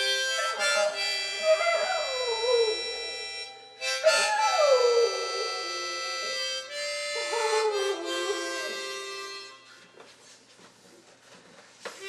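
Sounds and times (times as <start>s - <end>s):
harmonica playing chords: 0.0s - 9.8s
dog howling: 0.6s - 3.4s, 4.0s - 9.0s.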